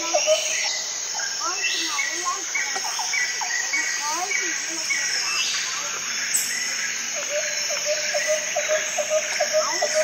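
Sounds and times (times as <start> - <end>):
insects chorus: 0.0 - 10.0.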